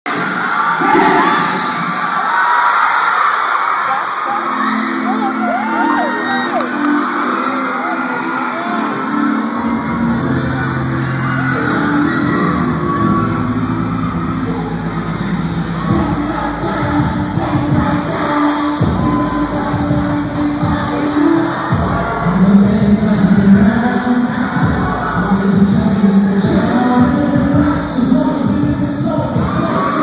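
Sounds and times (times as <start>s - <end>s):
pop song over speakers: 0.1s - 2.3s, 3.7s - 30.0s
crowd screaming and cheering: 0.1s - 30.0s.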